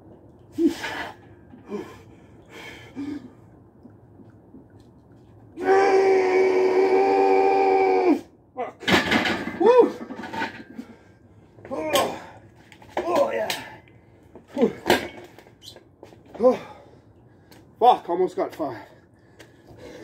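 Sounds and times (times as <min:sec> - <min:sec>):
heavy breathing: 0:00.6 - 0:03.6, 0:18.9 - 0:20.0.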